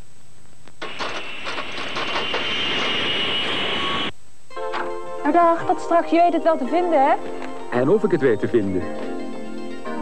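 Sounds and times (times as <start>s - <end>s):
steady high whine: 0.0s - 4.8s
music: 4.5s - 10.0s.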